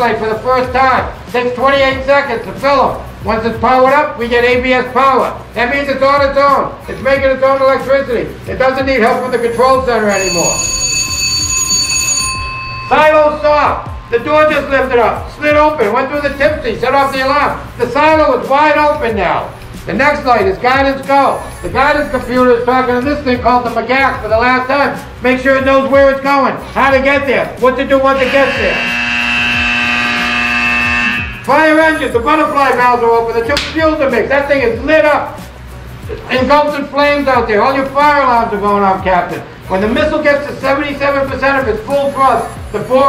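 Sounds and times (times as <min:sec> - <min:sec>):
alarm steady electronic tone: 0:09.0 - 0:15.8, 0:28.1 - 0:32.3.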